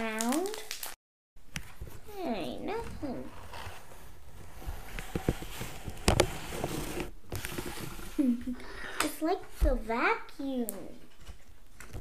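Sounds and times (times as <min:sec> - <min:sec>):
child laughing: 0:08.1 - 0:08.8.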